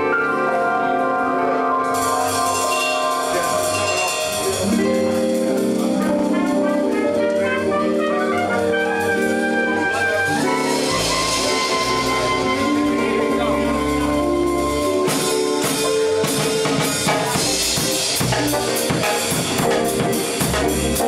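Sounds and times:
bass guitar: 0.0s - 21.0s
drum kit with cymbals: 0.0s - 21.0s
keyboard chords: 0.0s - 21.0s.

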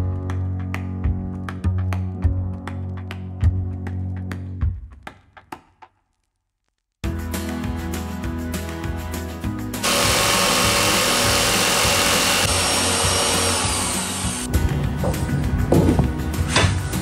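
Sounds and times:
background music: 0.0s - 5.6s, 7.0s - 17.0s
jigsaw cutting plywood: 9.8s - 14.5s
irregular knocks: 15.0s - 16.3s.

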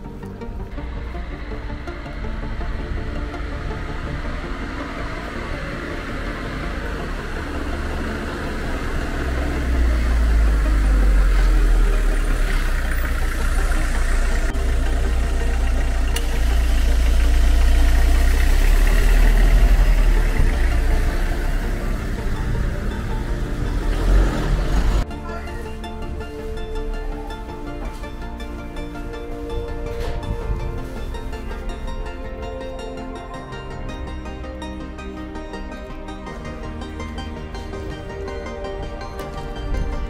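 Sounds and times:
background music: 0.0s - 40.0s
vehicle engine rumbling: 0.0s - 40.0s.

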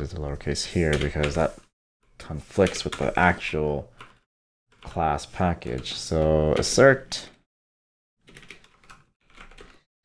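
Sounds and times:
computer keyboard typing: 0.9s - 1.4s, 3.9s - 6.9s, 8.2s - 9.9s.

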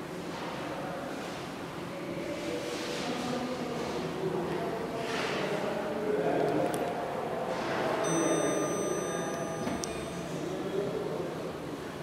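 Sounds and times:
elevator running hum and whine: 6.9s - 12.0s
elevator stopping click: 8.1s - 10.4s.

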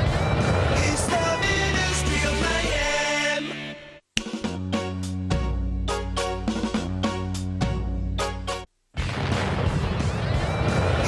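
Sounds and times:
hit sound effect: 9.0s - 11.0s.

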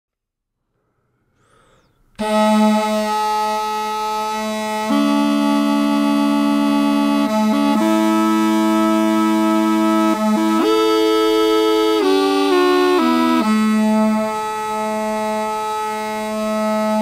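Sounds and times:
double pipe held melody notes: 2.1s - 17.0s
double pipe drone: 2.2s - 17.0s.

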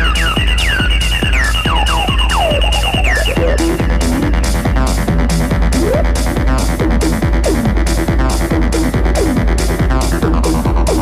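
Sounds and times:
heavy bass line: 0.0s - 11.0s
kick drums dropping in pitch: 0.0s - 11.0s.

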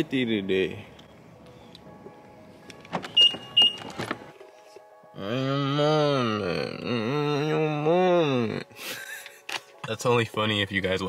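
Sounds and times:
man singing long notes: 5.1s - 8.8s.

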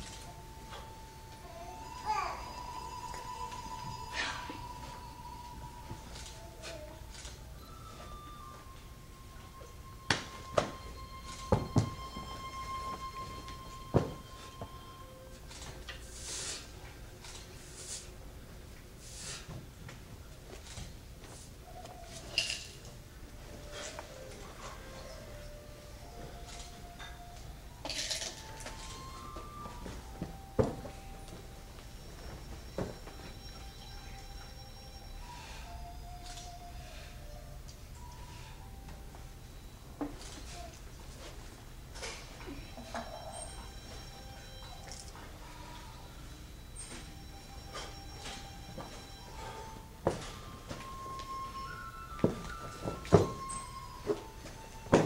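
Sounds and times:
faint steady high tone: 0.0s - 16.2s, 21.6s - 55.0s
low hall background: 0.0s - 55.0s
hiss of clothing or breath: 16.0s - 16.8s, 17.6s - 18.2s, 19.0s - 19.6s.

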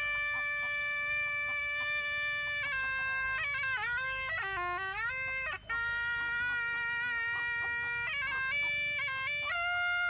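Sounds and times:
shawm playing reedy melody: 0.0s - 10.0s.

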